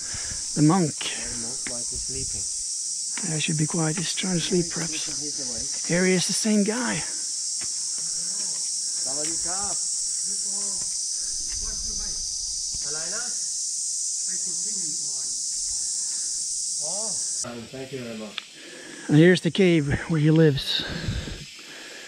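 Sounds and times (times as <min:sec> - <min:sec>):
high-pitched insect drone: 0:00.0 - 0:22.0.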